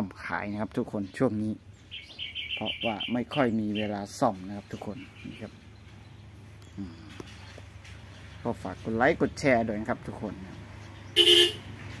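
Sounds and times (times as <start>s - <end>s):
loud toot: 11.2s - 11.7s.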